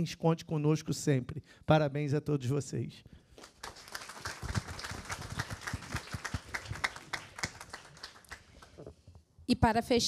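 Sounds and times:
audience applauding: 0:03.4 - 0:08.8.

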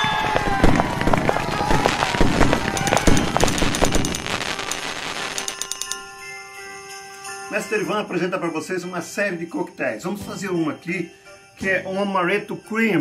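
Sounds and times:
fireworks crackling and popping: 0:00.0 - 0:06.1
music: 0:04.3 - 0:13.0.

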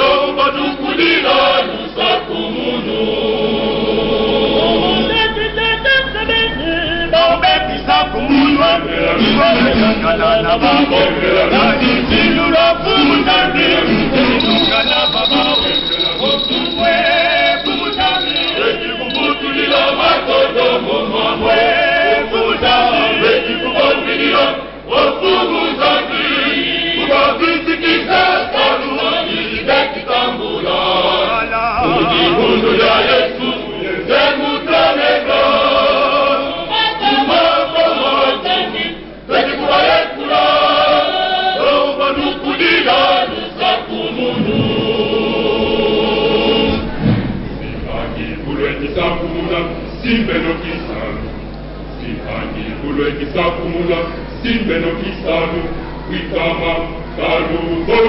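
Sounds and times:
choir of men and boys singing: 0:00.0 - 0:05.4, 0:07.1 - 0:51.3, 0:52.0 - 0:58.0.

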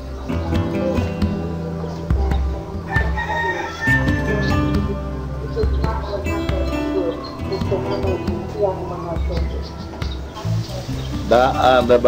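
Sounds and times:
music with strong bass line: 0:00.0 - 0:12.0
rooster crowing: 0:02.8 - 0:04.8.

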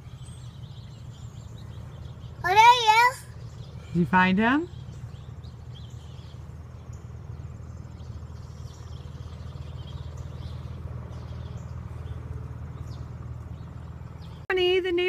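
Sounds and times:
bird chirps: 0:00.0 - 0:14.5
steady low hum: 0:00.0 - 0:15.0.

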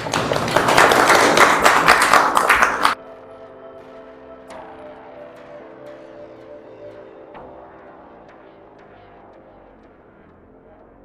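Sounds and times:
audience applauding: 0:00.0 - 0:03.0
music with held steady tones: 0:02.9 - 0:11.0.

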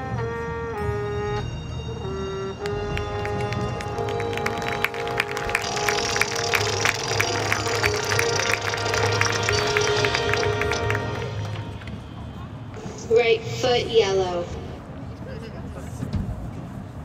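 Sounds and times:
brass chord: 0:00.0 - 0:12.2.

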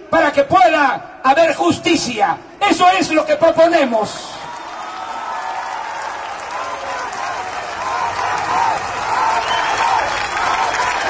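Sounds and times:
crowd applauding: 0:04.3 - 0:11.0
crowd chanting: 0:06.5 - 0:11.0.

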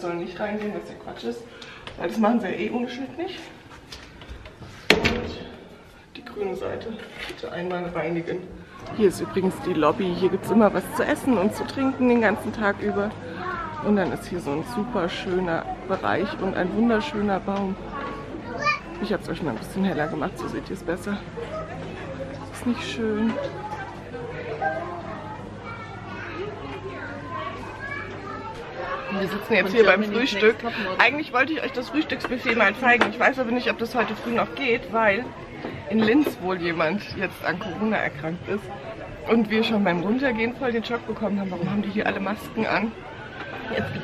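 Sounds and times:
indistinct background voices: 0:00.0 - 0:44.0
wooden door banging shut: 0:04.9 - 0:05.5
children chattering: 0:05.2 - 0:44.0.

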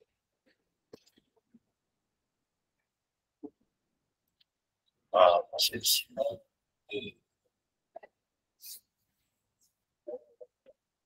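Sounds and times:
person speaking: 0:05.2 - 0:07.2.

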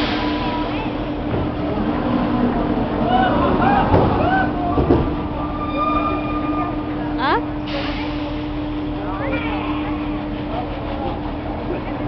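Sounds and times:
amusement ride machinery humming: 0:00.0 - 0:12.0
people shouting and whooping: 0:03.0 - 0:06.8.

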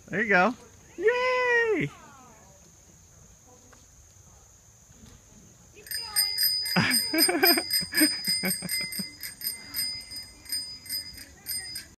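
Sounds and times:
bicycle wheels chirping: 0:05.8 - 0:12.0.

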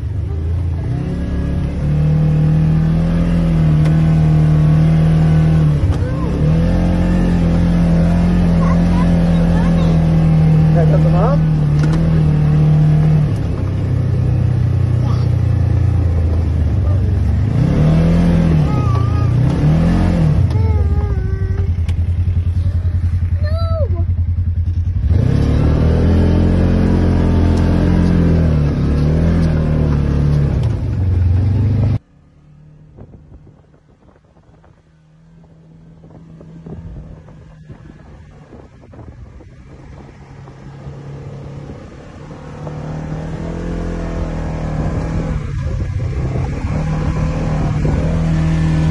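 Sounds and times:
utv engine revving: 0:00.0 - 0:48.9.

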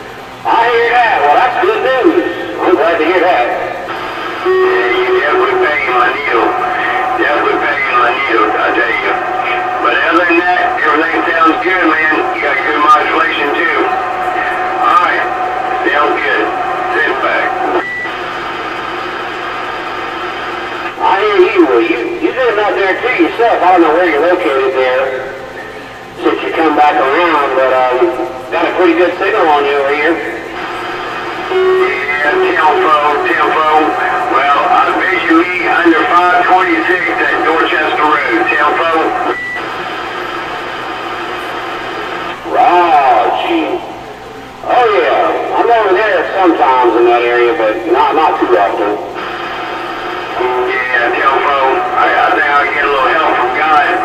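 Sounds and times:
radio hum and static: 0:00.0 - 0:54.0
voices over radio speaker: 0:00.3 - 0:54.0
high beep: 0:04.4 - 0:05.7, 0:31.5 - 0:33.2.

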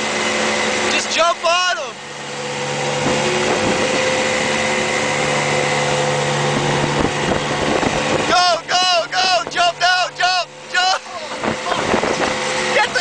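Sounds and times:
outboard motor humming: 0:00.0 - 0:13.0
water rushing along hull: 0:00.0 - 0:13.0.

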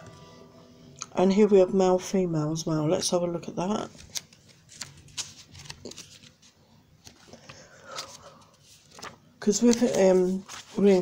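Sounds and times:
cards clicking and rustling: 0:04.0 - 0:08.3.

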